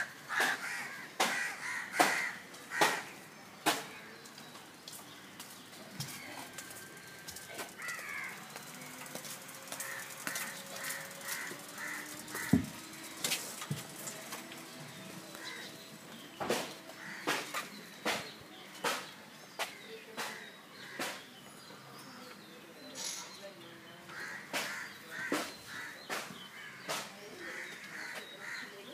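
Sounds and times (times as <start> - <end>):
crows cawing: 0.0 - 3.2, 7.8 - 8.5, 9.6 - 13.4, 15.3 - 15.8, 16.9 - 17.7, 24.1 - 28.8.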